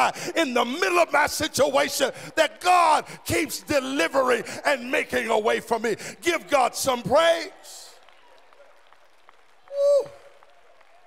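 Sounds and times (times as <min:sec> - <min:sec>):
faint scattered clapping: 0:07.9 - 0:11.0.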